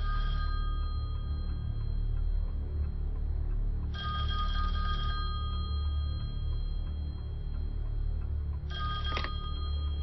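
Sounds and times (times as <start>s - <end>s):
low steady drone: 0.0s - 10.0s
telephone ringing: 8.7s - 9.7s.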